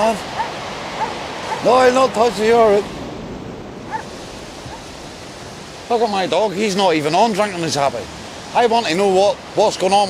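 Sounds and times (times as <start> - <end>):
steady outdoor rushing noise: 0.0 - 10.0.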